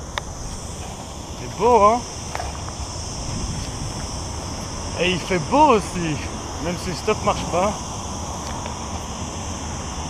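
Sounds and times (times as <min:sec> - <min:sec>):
high-pitched insect drone: 0:00.0 - 0:10.0
low rumble of wind or traffic: 0:00.0 - 0:10.0.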